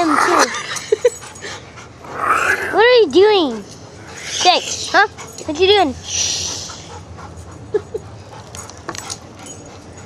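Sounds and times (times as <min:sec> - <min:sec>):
dog whimpering: 0:02.2 - 0:07.1
hiss: 0:06.0 - 0:06.9.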